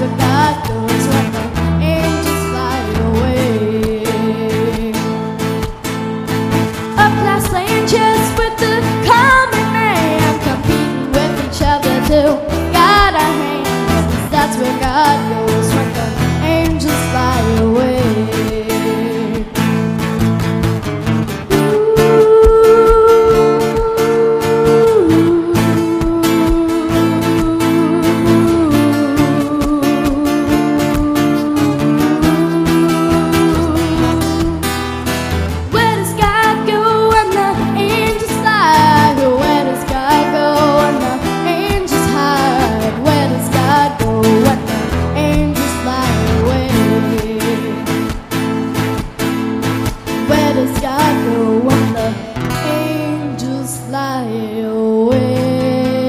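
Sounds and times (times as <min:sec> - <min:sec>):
girl singing into microphone: 0:00.0 - 0:20.0, 0:21.4 - 0:56.0
strummed acoustic guitar: 0:00.0 - 0:56.0.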